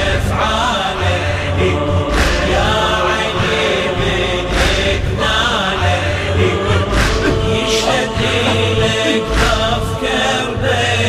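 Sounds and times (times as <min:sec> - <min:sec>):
deep bass backing: 0:00.0 - 0:11.0
men chanting: 0:00.0 - 0:11.0.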